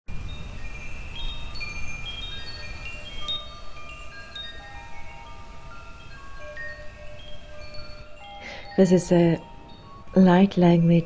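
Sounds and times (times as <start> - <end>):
wind chimes ringing: 0.1 - 11.0.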